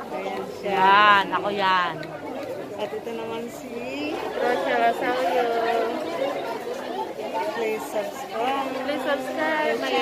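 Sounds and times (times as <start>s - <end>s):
crowd chatter: 0.0s - 10.0s
people talking: 0.0s - 10.0s.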